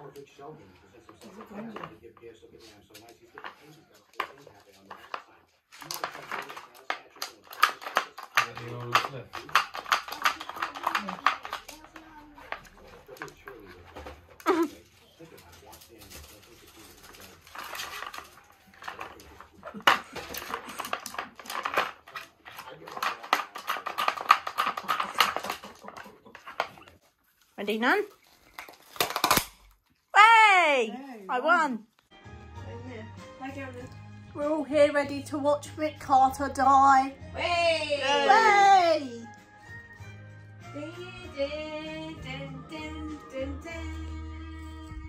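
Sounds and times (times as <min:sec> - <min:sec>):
plastic puzzle clattering and rattling: 0:03.1 - 0:27.0, 0:28.2 - 0:29.7.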